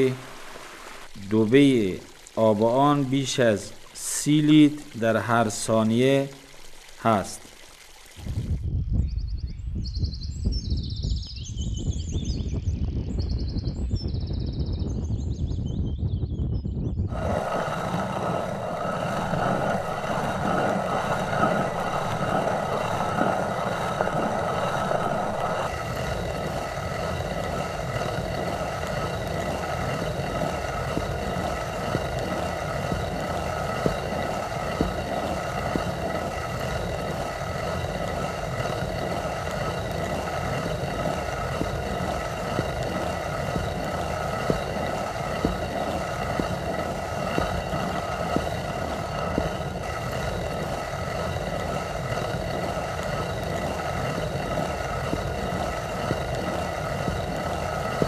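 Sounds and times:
stone quern grinding grain: 0:17.1 - 0:58.0.

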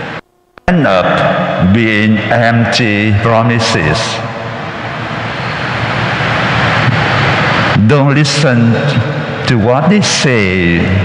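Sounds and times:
loud rushing roar: 0:00.0 - 0:11.0.

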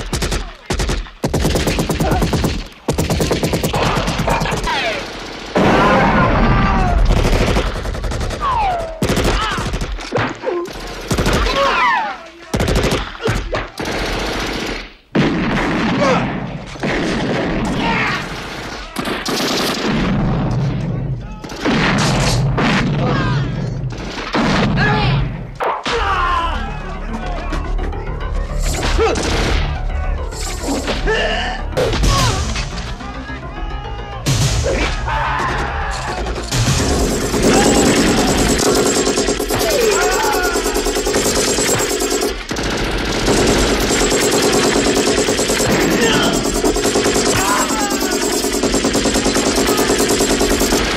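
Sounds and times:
rapid automatic gunfire: 0:00.0 - 0:05.8, 0:07.1 - 0:10.0, 0:10.7 - 0:11.6, 0:12.5 - 0:13.0, 0:13.8 - 0:14.9, 0:36.5 - 0:50.9
rapid machine-gun fire: 0:00.0 - 0:06.0, 0:07.0 - 0:10.0, 0:10.7 - 0:11.6, 0:13.8 - 0:15.9, 0:36.5 - 0:50.9.

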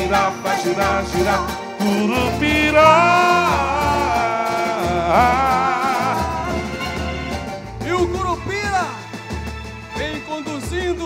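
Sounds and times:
steady drum beat: 0:00.0 - 0:11.0
person singing long notes: 0:01.8 - 0:07.2.

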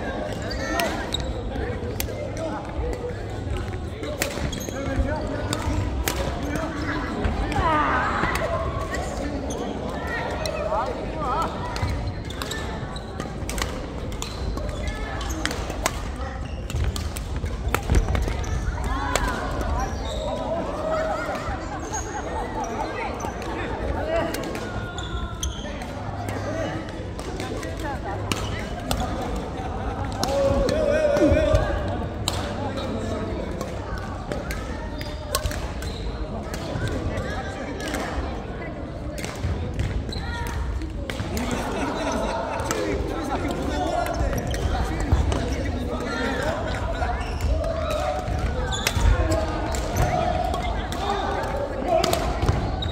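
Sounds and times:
players' voices in echoing hall: 0:00.0 - 0:52.9
rackets striking shuttlecock: 0:33.5 - 0:35.9.

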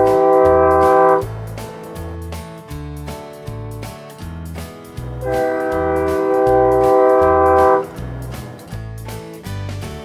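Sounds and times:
train air horn chord: 0:00.0 - 0:01.4, 0:05.2 - 0:08.0
background music with bass line: 0:00.0 - 0:10.0.

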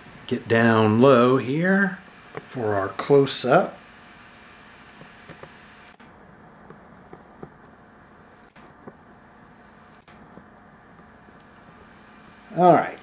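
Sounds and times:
faint hum: 0:00.0 - 0:13.0
low steady hiss: 0:00.0 - 0:13.0.

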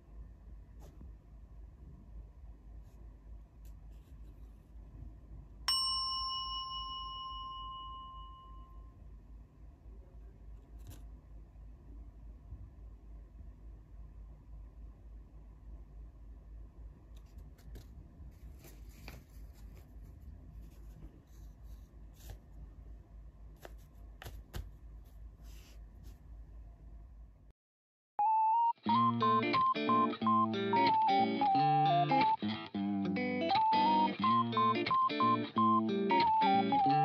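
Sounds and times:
steady low hum: 0:00.0 - 0:27.5
bell-like ding: 0:05.7 - 0:08.9
banknotes rustling: 0:17.3 - 0:22.4.

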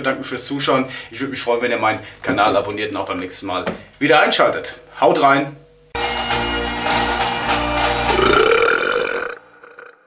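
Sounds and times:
loud drawn-out burp: 0:08.1 - 0:10.0.

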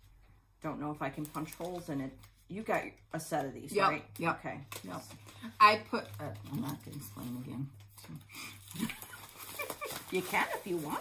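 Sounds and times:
woman laughing softly: 0:08.7 - 0:10.1.

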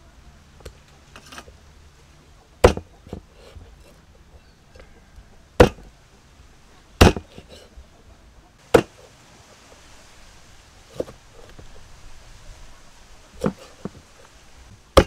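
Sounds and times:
cleaver chopping on wooden block: 0:02.6 - 0:03.3, 0:05.6 - 0:05.9, 0:07.0 - 0:07.5, 0:08.7 - 0:09.0.

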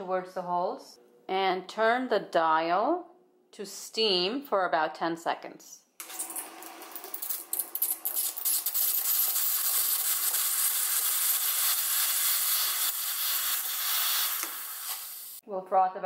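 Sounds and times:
steam wand hissing: 0:08.6 - 0:15.4.

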